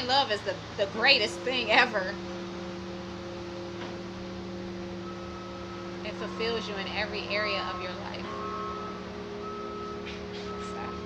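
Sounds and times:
ambient music with held drone tones: 1.0 - 11.0.

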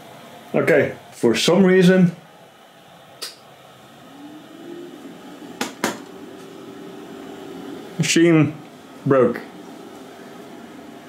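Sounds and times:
fan hum spinning up: 0.0 - 11.0.

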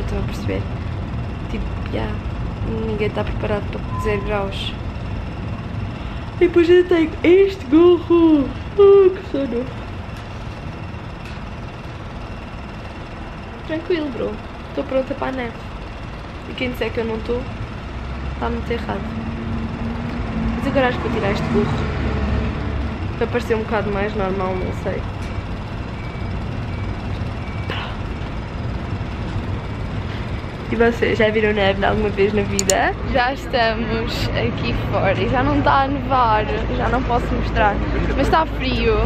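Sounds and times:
steady low rumble: 0.0 - 39.0
faint thin high tone: 3.9 - 4.5
short higher sound: 3.9 - 4.8.

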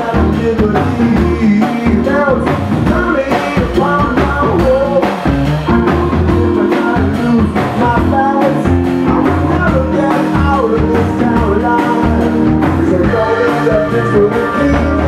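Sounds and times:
drums keeping a steady beat: 0.0 - 15.0
electric guitar: 0.0 - 15.0
man singing: 0.0 - 15.0.

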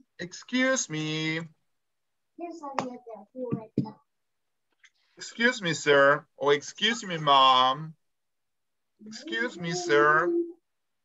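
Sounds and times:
person speaking over video call: 0.0 - 1.7, 4.8 - 8.1, 9.0 - 10.6.

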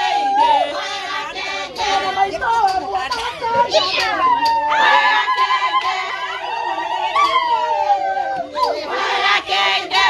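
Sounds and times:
women ululating: 3.7 - 8.9.

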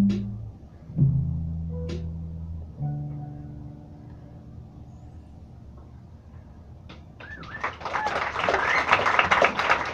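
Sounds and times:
whoops and cheers: 7.2 - 9.2
audience applause: 7.2 - 9.9.

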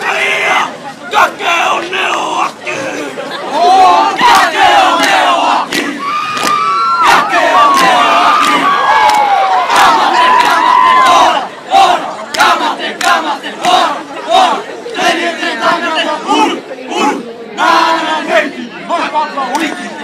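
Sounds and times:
people clapping: 4.2 - 14.0
crowd screaming and cheering: 5.9 - 11.7.

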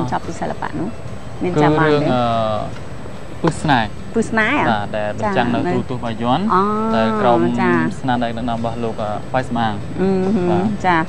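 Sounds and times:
person talking: 0.0 - 2.7, 3.4 - 11.0.

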